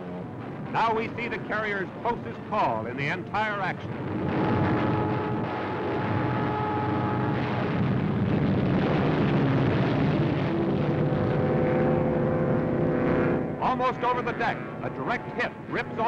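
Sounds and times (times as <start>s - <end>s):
aircraft engines roaring: 0.0s - 16.0s.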